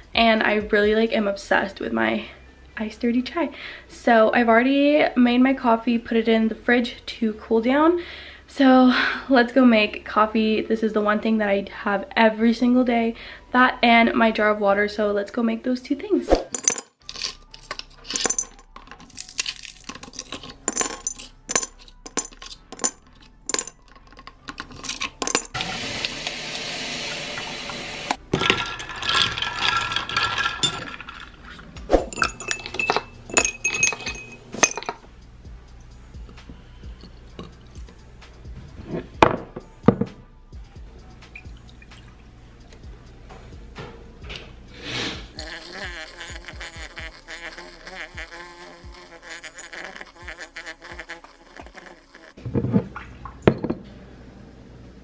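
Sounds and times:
ice cubes clinking into glass jar: 16.5s - 25.6s, 28.3s - 35.0s
milk frother whirring: 25.6s - 31.5s
liquid pouring over ice: 28.4s - 31.5s.

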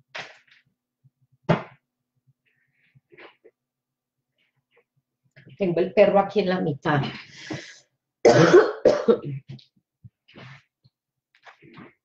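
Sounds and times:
woman coughing: 8.3s - 9.4s.

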